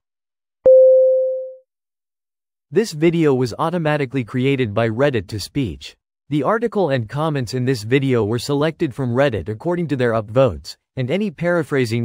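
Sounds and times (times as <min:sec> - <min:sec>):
electronic beep: 0:00.7 - 0:01.6.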